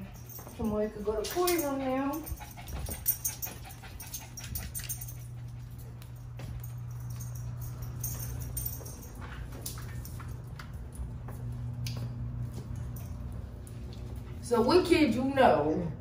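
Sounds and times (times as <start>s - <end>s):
low hum: 0.0s - 16.0s
steps clicking on hardwood floor: 1.3s - 5.0s, 5.6s - 14.4s.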